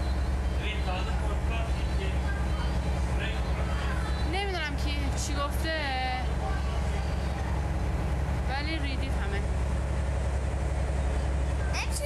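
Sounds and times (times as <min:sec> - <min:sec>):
vehicle interior rumble: 0:00.0 - 0:12.0
girl speaking: 0:11.8 - 0:12.0.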